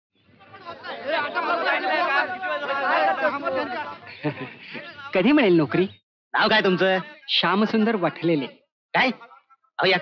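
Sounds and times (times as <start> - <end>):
people chattering: 0.2 - 8.6.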